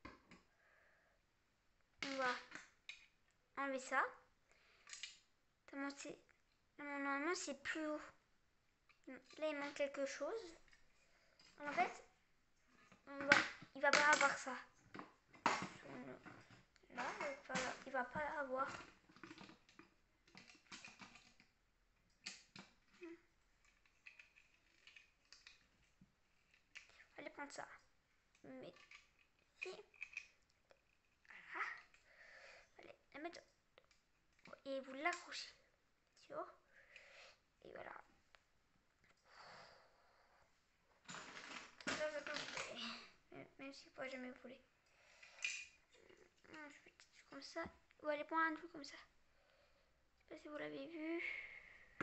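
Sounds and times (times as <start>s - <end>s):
plastic bricks clicking together: 4.8s - 5.2s, 19.2s - 21.5s, 28.8s - 31.0s.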